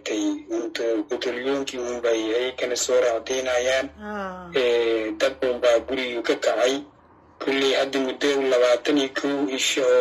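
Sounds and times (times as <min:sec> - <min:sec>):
woman talking: 0:04.0 - 0:04.7.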